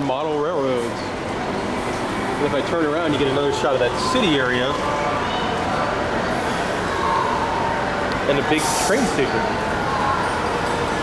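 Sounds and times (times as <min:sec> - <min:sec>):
indoor hall hiss and hum: 0:00.0 - 0:11.0.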